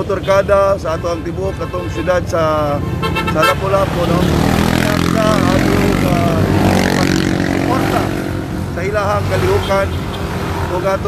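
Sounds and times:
man speaking: 0.0 - 10.1, 10.7 - 11.0
vehicles passing engine rumble: 0.0 - 11.0.

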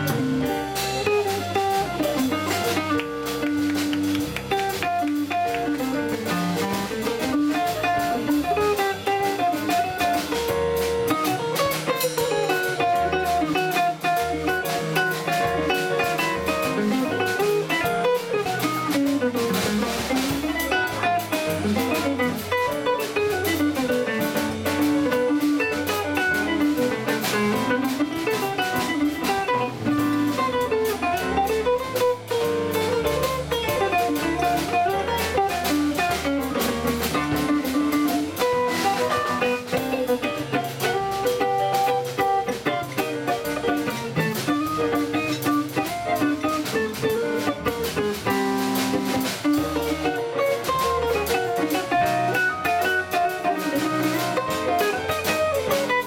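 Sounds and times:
digital stage piano: 0.0 - 56.0
drum kit with cymbals: 0.0 - 56.0
electric guitar: 0.0 - 56.0
upright double bass: 0.0 - 56.0.

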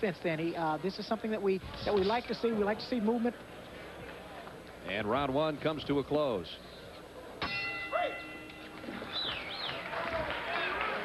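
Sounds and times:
arena crowd noise: 0.0 - 11.0
ringside bell ringing: 7.4 - 9.0.

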